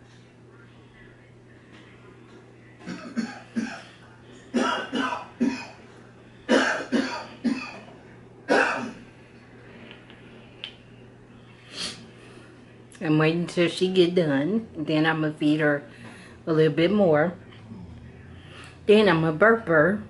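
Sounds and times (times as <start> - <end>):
person coughing: 2.8 - 5.8, 6.5 - 7.9, 8.5 - 9.1.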